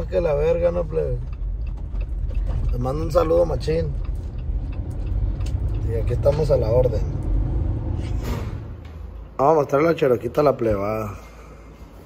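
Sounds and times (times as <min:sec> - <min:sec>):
vehicle engine rumble from cab: 0:00.0 - 0:09.5
road noise: 0:00.0 - 0:12.0.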